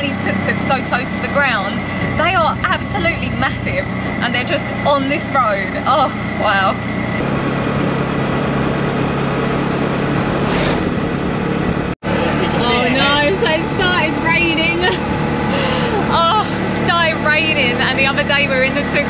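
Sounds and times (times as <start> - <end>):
tuk-tuk engine running: 0.0 - 19.0
wind and road noise: 0.0 - 19.0.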